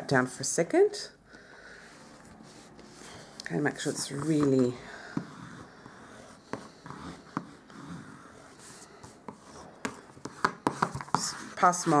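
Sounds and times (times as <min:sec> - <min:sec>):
paper rubbing and rustling: 0:10.8 - 0:12.0.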